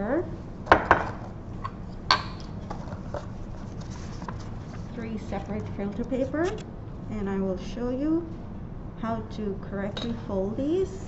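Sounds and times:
low room hum: 0:00.0 - 0:11.0
taps and rustles of handling: 0:00.7 - 0:06.6.

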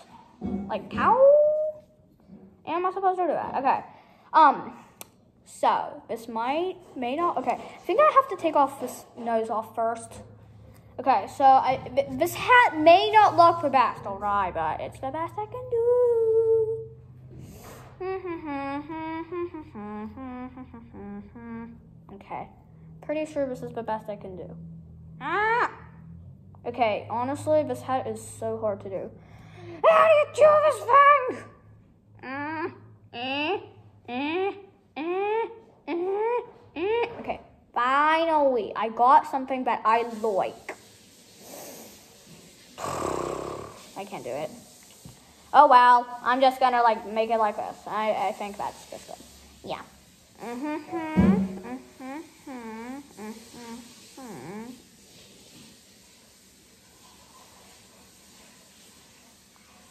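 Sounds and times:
girl humming a tune: 0:17.7 - 0:21.9, 0:50.4 - 0:54.8.

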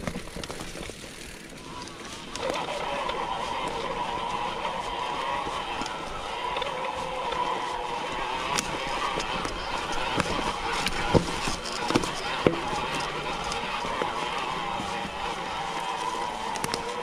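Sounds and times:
bike wavering buzz: 0:00.0 - 0:17.0
chain and wheels clicking: 0:00.0 - 0:17.0
tyres rolling noise: 0:00.0 - 0:17.0.

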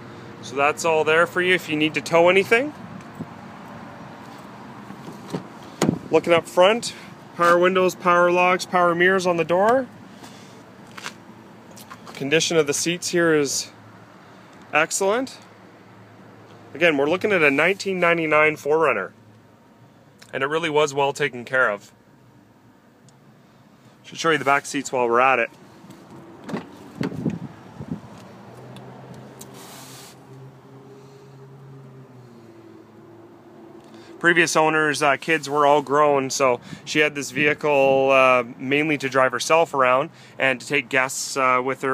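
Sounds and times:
car door clicks and knocks: 0:05.3 - 0:06.0, 0:26.4 - 0:27.4.

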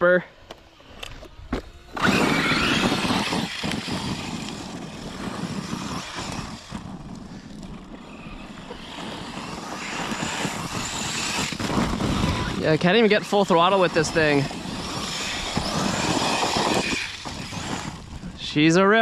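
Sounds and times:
electric toy truck motor: 0:00.5 - 0:18.4
tyres on bark mulch: 0:00.7 - 0:19.0.

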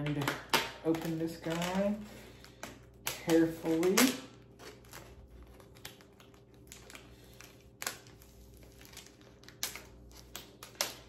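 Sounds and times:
plastic crinkling and clicking: 0:00.0 - 0:11.0.

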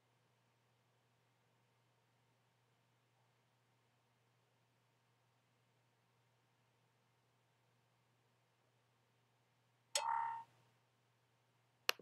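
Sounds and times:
computer system sound: 0:10.0 - 0:10.5.

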